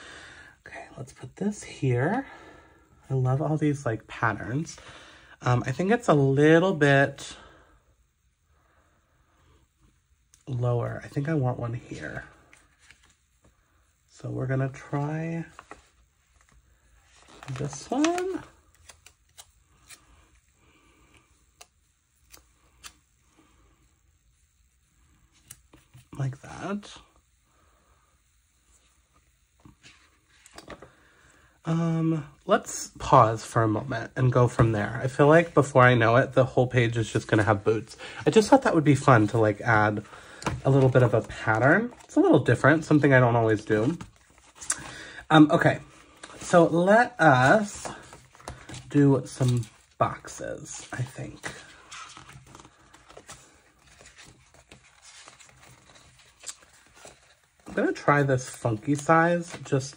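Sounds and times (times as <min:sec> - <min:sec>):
paper pages rustling: 0:12.4 - 0:13.2, 0:15.4 - 0:20.4, 0:29.6 - 0:31.0, 0:37.0 - 0:59.9.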